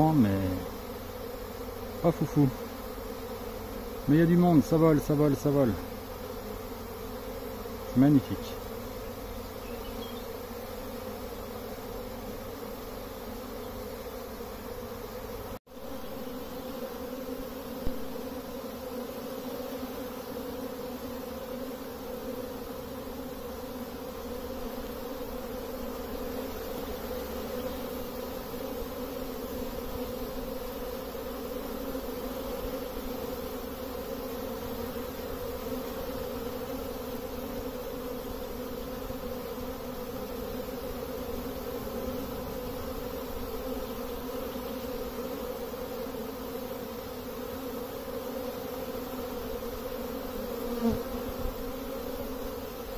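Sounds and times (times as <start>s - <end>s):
honeybees buzzing: 0.0s - 52.9s.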